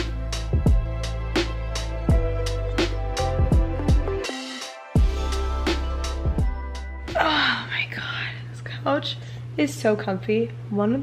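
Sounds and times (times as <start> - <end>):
steady low hum: 5.0 - 11.0
woman sighing: 7.1 - 8.2
woman speaking: 7.1 - 11.0.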